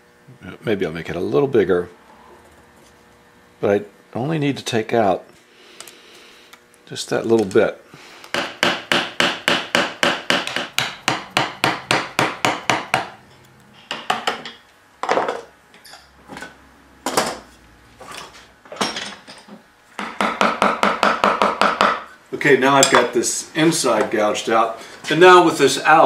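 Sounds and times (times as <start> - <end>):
mallet tapping carving gouge: 8.3 - 13.1, 20.0 - 22.1.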